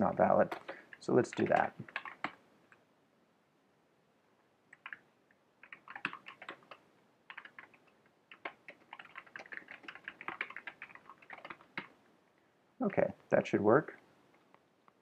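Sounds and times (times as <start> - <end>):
computer keyboard typing: 0.4 - 2.4, 4.7 - 5.0, 5.6 - 12.0.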